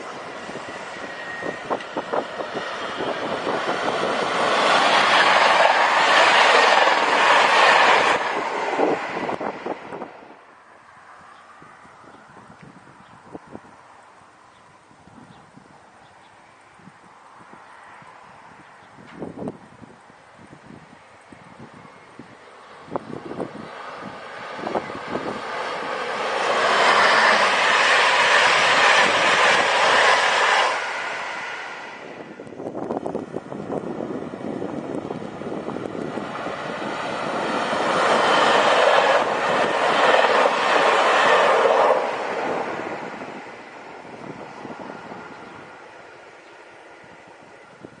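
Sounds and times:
trains passing wheel-on-rail noise: 0.0 - 48.0.

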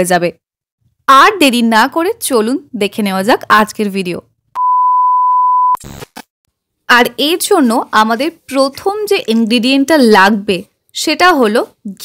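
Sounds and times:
electronic beep: 4.6 - 5.8.

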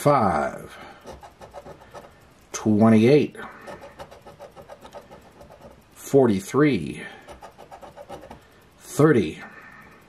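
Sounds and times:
coin scratching lottery ticket: 0.8 - 2.2, 3.5 - 6.1, 7.0 - 8.4.

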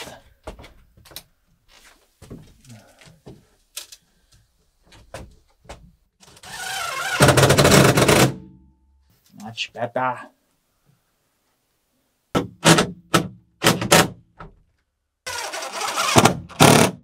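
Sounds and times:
power driver driving screw: 15.3 - 17.0.

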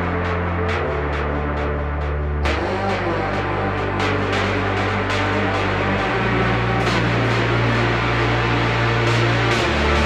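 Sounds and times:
electronic trance music: 0.0 - 10.0.

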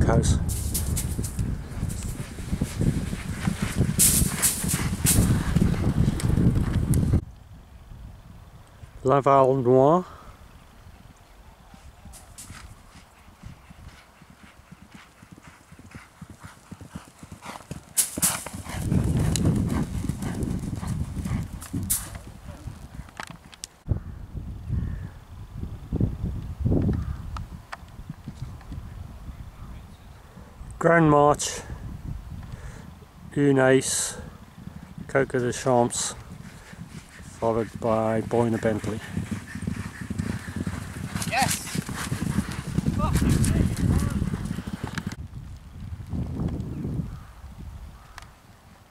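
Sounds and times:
horse hoofbeats on turf: 0.5 - 6.9, 11.7 - 23.5, 35.8 - 44.9.

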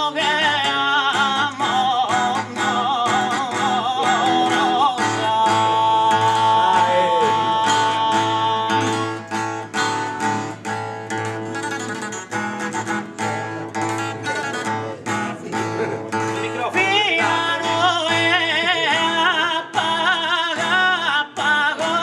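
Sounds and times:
man singing ornamented line: 0.0 - 9.7, 13.2 - 22.0
acoustic guitar strumming chords: 0.0 - 22.0.

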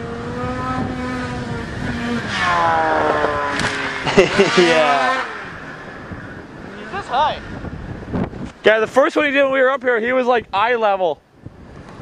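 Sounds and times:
snowmobile engine at speed: 0.0 - 9.3.

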